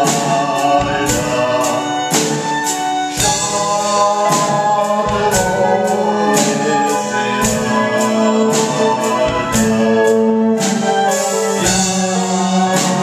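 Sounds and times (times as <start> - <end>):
choir singing long notes: 0.0 - 13.0
drum and cymbal hits: 0.0 - 13.0
instrumental backing: 0.0 - 13.0.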